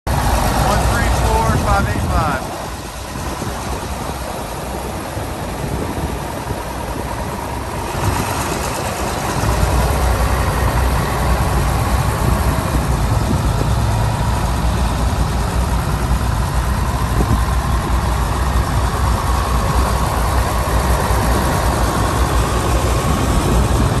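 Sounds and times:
tractor diesel engine running: 0:00.1 - 0:24.0.

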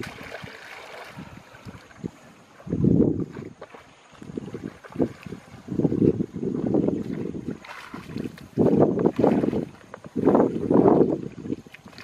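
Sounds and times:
water splashing and dripping: 0:00.0 - 0:12.0.

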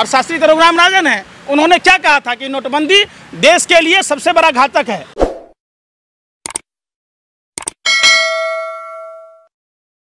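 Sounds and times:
bright bell ding: 0:07.9 - 0:09.5.

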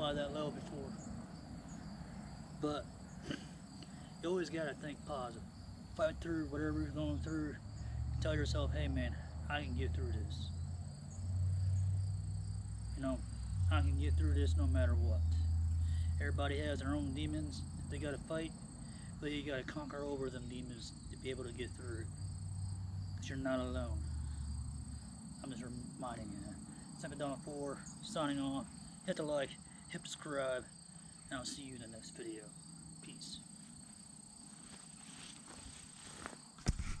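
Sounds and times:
insects chirping: 0:00.0 - 0:37.0
camera handling knocks: 0:36.6 - 0:37.0.

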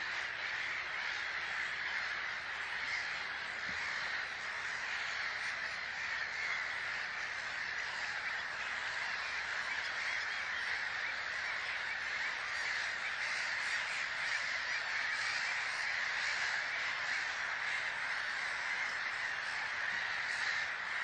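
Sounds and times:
flock of birds chattering: 0:00.0 - 0:21.0.

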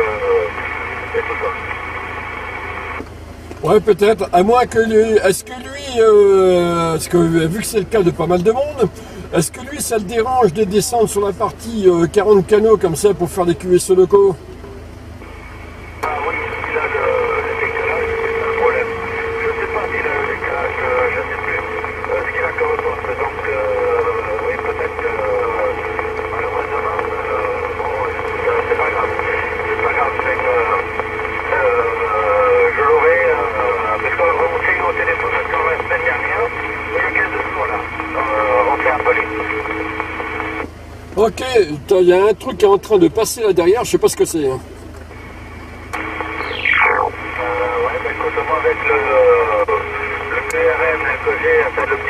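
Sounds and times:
radio hiss: 0:00.0 - 0:03.0, 0:15.2 - 0:52.0
voice over radio speaker: 0:00.0 - 0:03.0, 0:03.6 - 0:14.4, 0:16.0 - 0:44.7, 0:46.0 - 0:52.0
steady interference tones: 0:00.0 - 0:14.5, 0:15.1 - 0:52.0.

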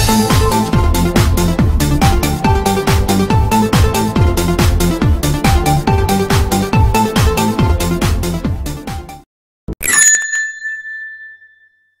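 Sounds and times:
small bell ringing: 0:09.8 - 0:12.0.

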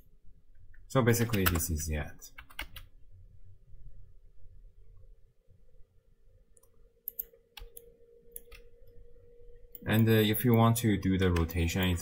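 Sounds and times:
faint steady hum: 0:00.0 - 0:12.0
person speaking: 0:00.8 - 0:02.6, 0:09.8 - 0:12.0
computer mouse and keyboard clicks: 0:01.2 - 0:01.7.

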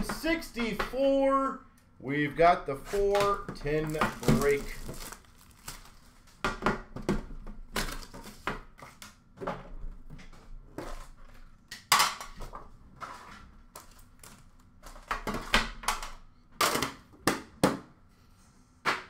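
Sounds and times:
card packs handled: 0:02.8 - 0:06.4.

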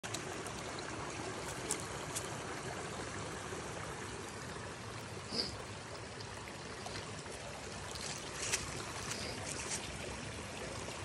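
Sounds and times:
brook running over rocks: 0:00.0 - 0:11.0.

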